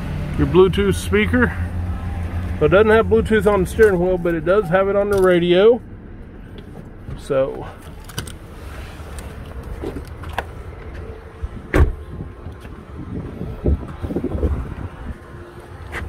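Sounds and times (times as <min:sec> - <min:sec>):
low rumbling: 0:00.0 - 0:15.9
truck door slamming: 0:11.7 - 0:12.0.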